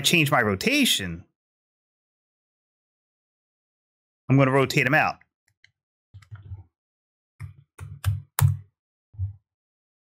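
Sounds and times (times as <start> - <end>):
computer keyboard and mouse clicks: 5.5 - 6.6, 7.4 - 8.6.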